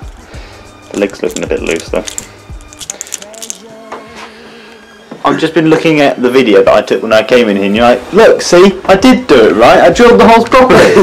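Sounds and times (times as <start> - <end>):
wooden toy clicks: 1.0 - 3.6.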